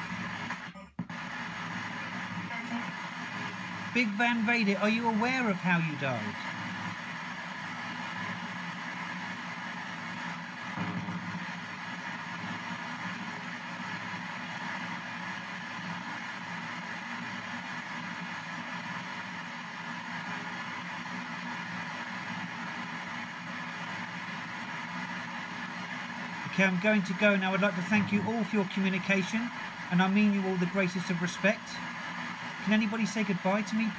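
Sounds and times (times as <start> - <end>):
radio static and hiss: 0.0 - 33.9.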